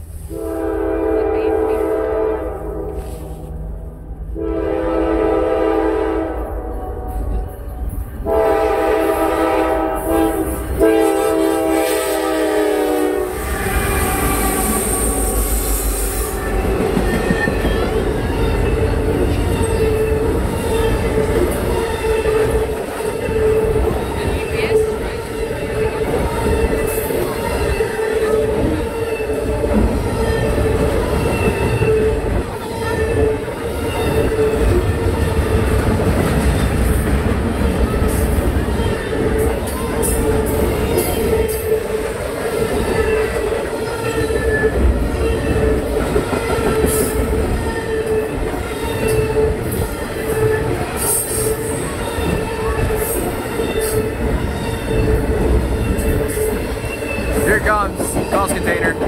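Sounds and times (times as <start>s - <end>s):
locomotive horn blasts: 0.3s - 7.3s, 8.2s - 15.3s
wheels rumbling on rails: 13.2s - 59.0s.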